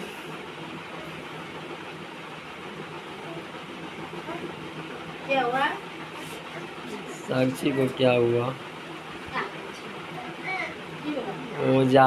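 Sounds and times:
steady machine hum: 0:00.0 - 0:12.0.

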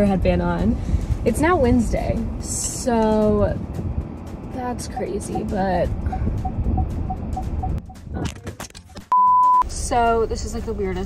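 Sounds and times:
engine and road rumble: 0:00.0 - 0:11.0
turn signal ticking: 0:00.0 - 0:11.0.

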